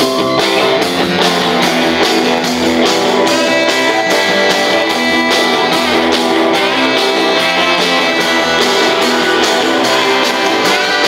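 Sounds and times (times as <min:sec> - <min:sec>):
bass guitar: 0:00.0 - 0:11.0
electric guitars: 0:00.0 - 0:11.0
steady drum beat: 0:00.0 - 0:11.0.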